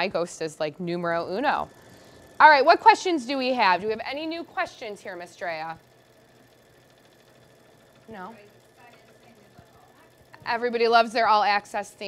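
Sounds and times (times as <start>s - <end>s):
embroidery machine stitching: 0.0s - 12.0s.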